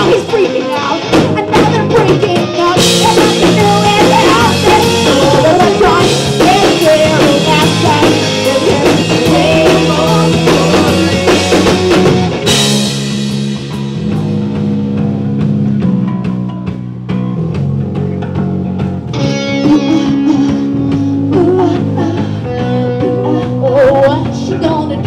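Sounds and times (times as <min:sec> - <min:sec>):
rock band playing: 0:00.0 - 0:25.0.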